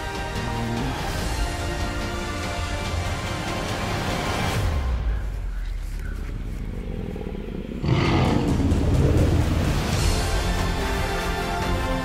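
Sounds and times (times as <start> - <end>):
low rumble: 5.1 - 10.4
loud rough roar: 7.6 - 10.3.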